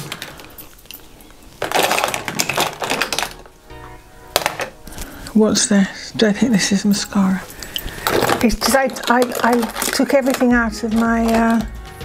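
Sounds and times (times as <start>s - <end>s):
makeup containers clattering: 0.0s - 5.2s, 6.2s - 12.0s.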